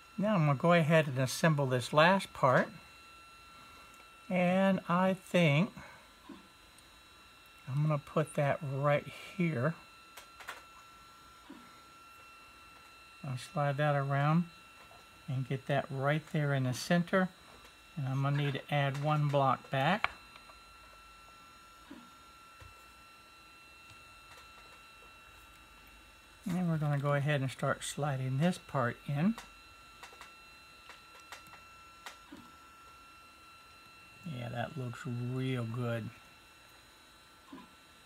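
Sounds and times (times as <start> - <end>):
faint high-pitched electrical tones: 0.0 - 38.0.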